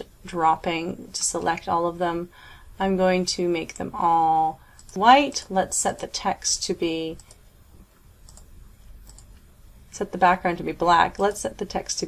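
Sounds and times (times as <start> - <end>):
computer mouse clicks: 4.8 - 5.0, 7.2 - 7.4, 8.2 - 9.5.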